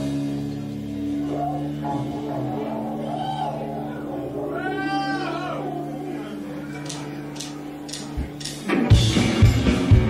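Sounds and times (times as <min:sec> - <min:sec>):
sustained low chord: 0:00.0 - 0:08.4
electric guitar sliding notes: 0:00.0 - 0:10.0.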